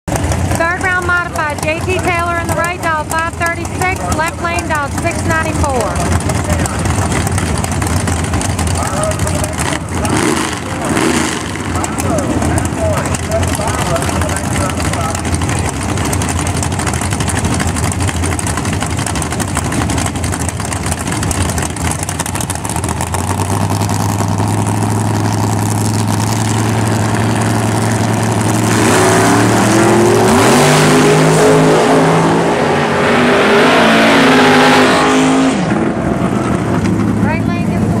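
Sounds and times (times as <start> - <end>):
race car engines idling: 0.1 - 33.0, 35.5 - 38.0
race cars accelerating hard: 0.1 - 38.0.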